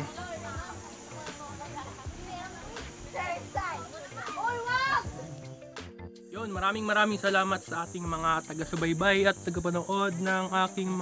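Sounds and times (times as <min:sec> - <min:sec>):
children calling out: 0:00.0 - 0:05.2.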